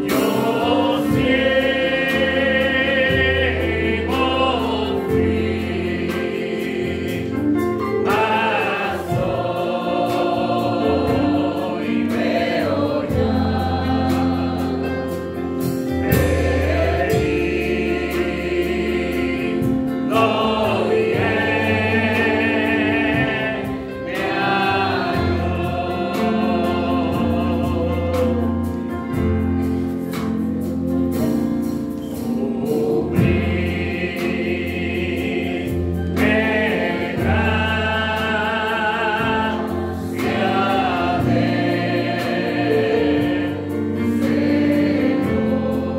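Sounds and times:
bass guitar: 0.0 - 45.9
electric keyboard: 0.0 - 45.9.

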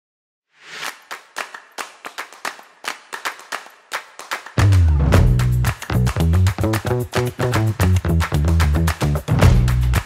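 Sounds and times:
sharp percussive claps with echo: 0.8 - 10.0
music track: 4.6 - 10.0.

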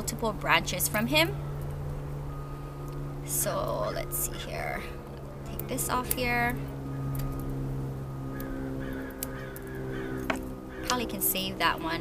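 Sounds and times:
bird calling: 1.1 - 11.6.

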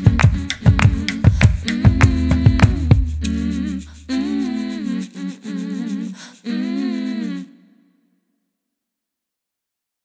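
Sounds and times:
low bass note: 2.1 - 4.2.

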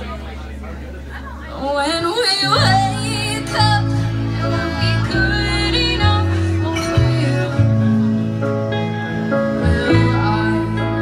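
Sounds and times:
woman singing: 1.6 - 8.2, 9.5 - 11.0
digital piano: 2.4 - 11.0
electric bass line: 2.4 - 11.0.

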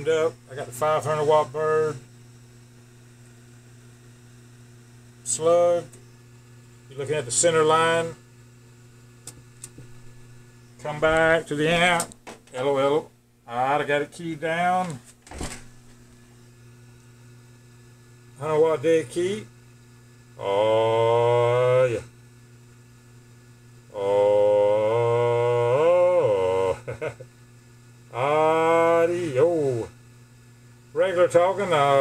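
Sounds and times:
faint electrical hum: 0.0 - 32.0.

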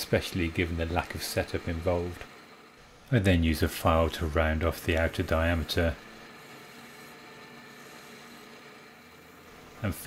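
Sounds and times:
metal lathe humming: 0.0 - 10.0.

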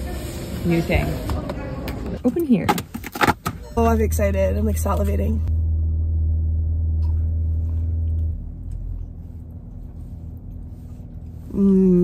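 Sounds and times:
car hum inside cabin: 2.2 - 12.0.

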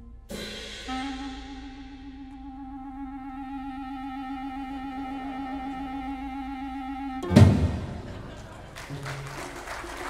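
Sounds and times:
audience applause: 8.0 - 10.0.

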